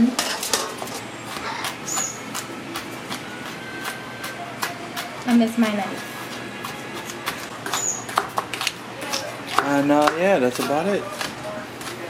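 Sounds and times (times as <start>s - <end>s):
knife chopping on plastic board: 1.3s - 12.0s.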